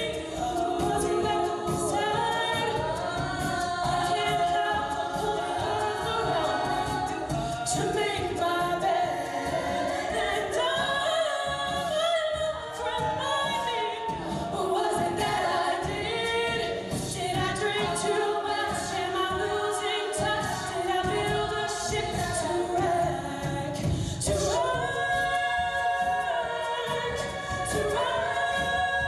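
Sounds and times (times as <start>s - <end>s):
female a cappella group singing: 0.0s - 29.0s.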